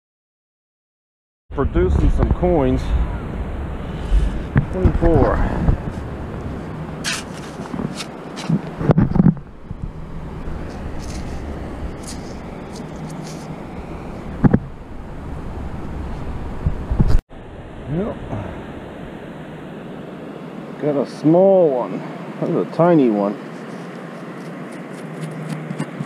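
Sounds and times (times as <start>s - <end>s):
wind rumble on microphone: 1.5s - 20.1s
metal scoop scraping wet sand: 7.0s - 8.6s, 10.6s - 13.6s.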